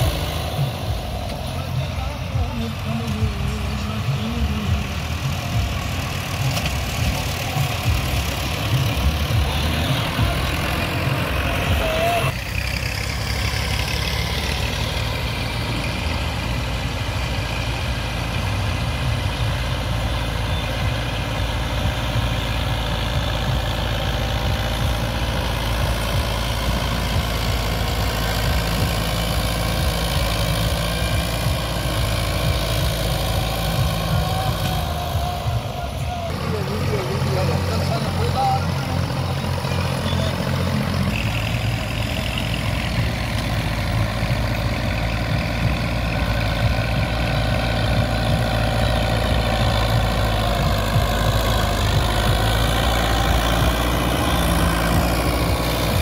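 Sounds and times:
tractor engines rumbling: 0.0 - 56.0.

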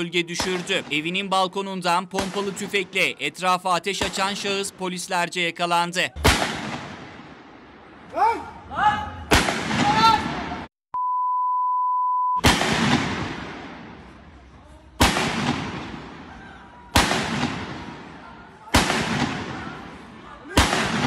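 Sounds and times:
shotgun blasts with echo: 0.0 - 1.2, 2.1 - 3.1, 3.9 - 4.6, 6.2 - 7.8, 9.3 - 10.7, 12.4 - 14.2, 15.0 - 21.0
person shouting: 8.1 - 10.4
censor bleep: 11.0 - 12.4.

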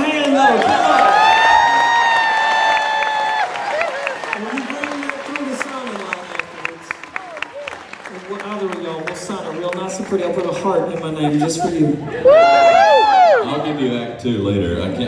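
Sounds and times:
audience clapping: 0.0 - 13.3.

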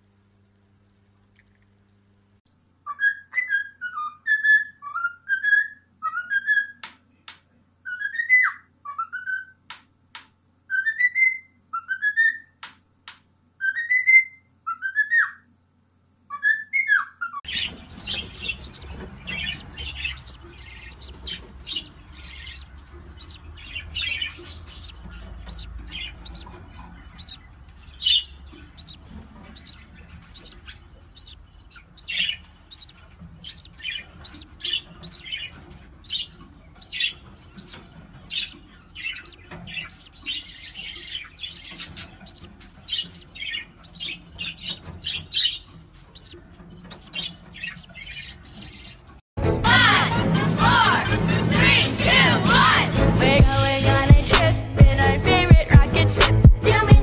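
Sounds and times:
budgerigars chirping: 16.3 - 49.1.

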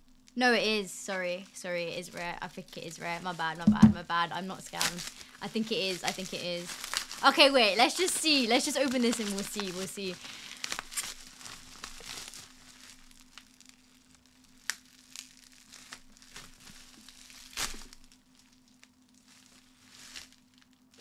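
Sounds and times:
bubble wrap crinkling: 2.0 - 21.0.

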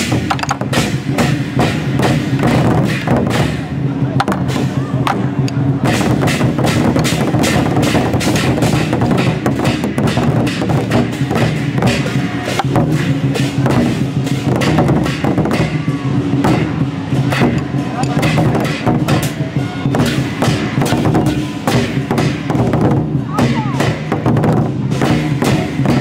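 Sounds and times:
barrel drums playing: 0.0 - 26.0
hand cymbals clashing: 4.4 - 22.7.

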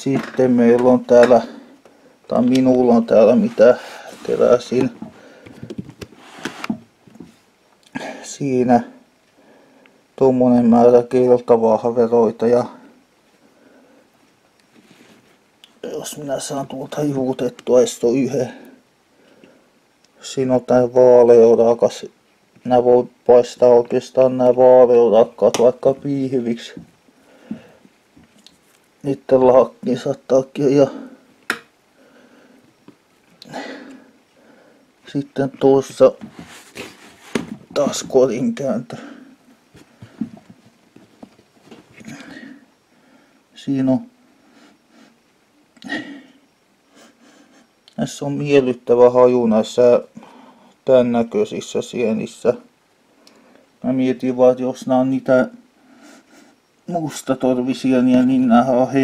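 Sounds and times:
faint rustling in basket: 14.6 - 15.5, 35.8 - 38.4.

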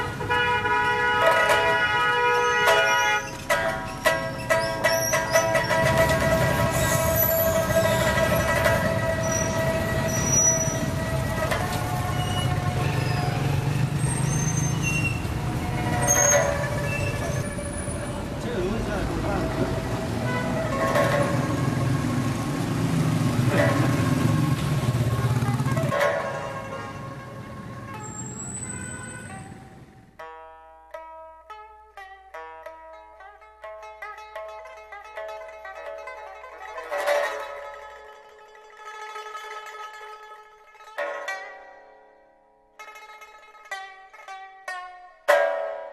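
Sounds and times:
motor vehicle running low: 1.2 - 30.2.

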